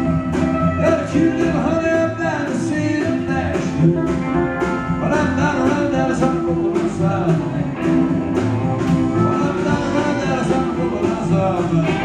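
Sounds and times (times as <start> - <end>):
live country band playing: 0.0 - 12.0
steady drum beat: 0.0 - 12.0.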